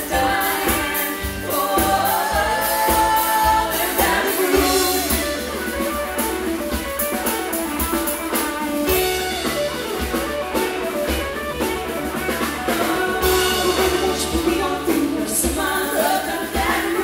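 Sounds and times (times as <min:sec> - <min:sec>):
bass: 0:00.0 - 0:17.0
drum kit: 0:00.0 - 0:17.0
electric guitar: 0:00.0 - 0:17.0.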